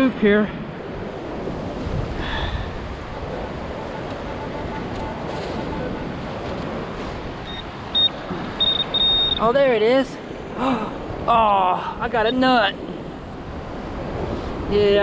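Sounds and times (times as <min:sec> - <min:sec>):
wind: 0:00.0 - 0:15.0
metal detector pinpointer beeps: 0:07.4 - 0:09.4.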